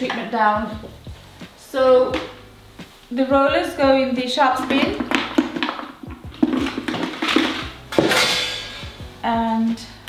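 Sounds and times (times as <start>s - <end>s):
rollers clattering into plastic bin: 4.6s - 9.0s.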